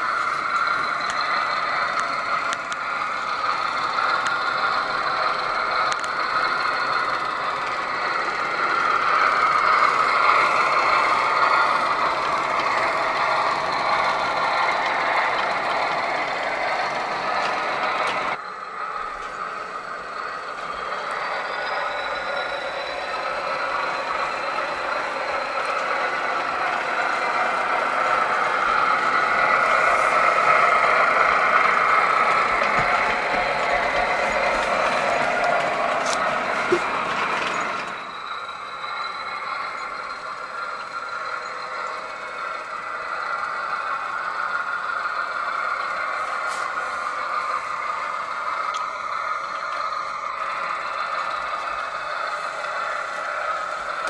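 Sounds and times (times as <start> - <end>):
model train running on track: 0.0 - 54.0.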